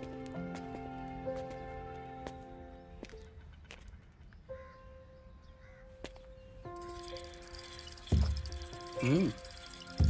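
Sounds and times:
faint crow caws: 3.1s - 6.5s.

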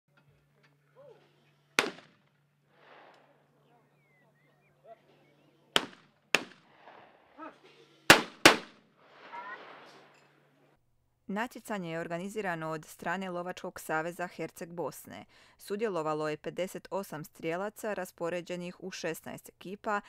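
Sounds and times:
shotgun shots: 1.8s - 3.4s, 5.7s - 7.3s, 8.1s - 10.1s.

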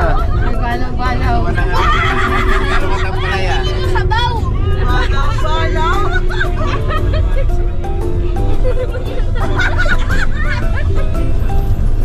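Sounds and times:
van rumbling on the road: 0.0s - 12.0s.

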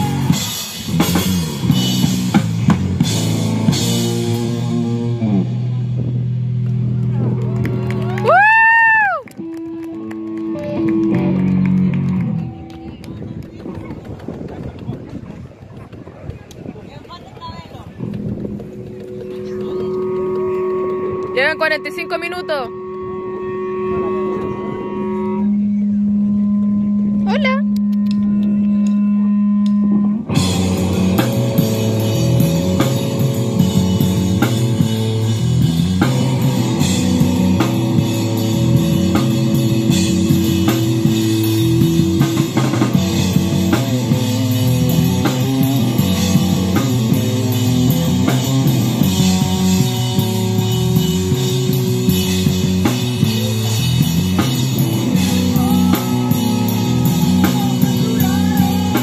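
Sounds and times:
drum kit: 0.0s - 6.5s, 30.3s - 59.0s
punk band playing: 0.0s - 15.2s, 17.4s - 59.0s.

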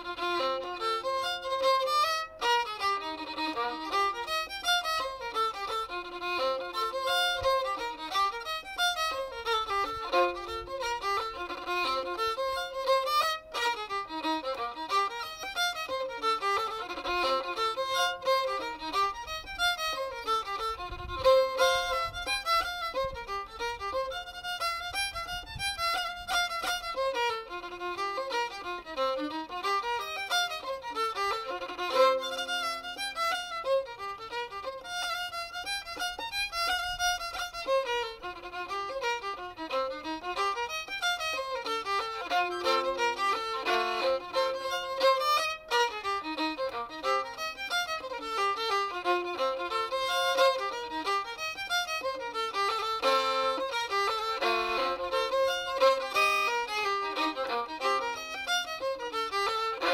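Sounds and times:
solo fiddle dance tune: 0.0s - 59.9s.

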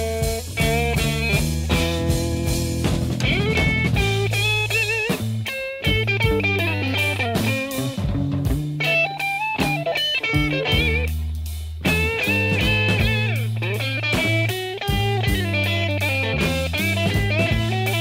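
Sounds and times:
bass guitar: 0.0s - 18.0s
drums: 0.0s - 18.0s
electric guitar lead with bent notes: 0.0s - 18.0s.

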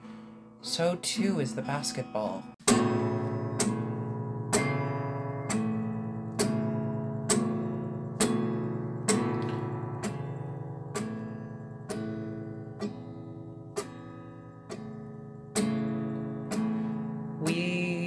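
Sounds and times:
guitar strummed slowly: 0.0s - 18.0s.

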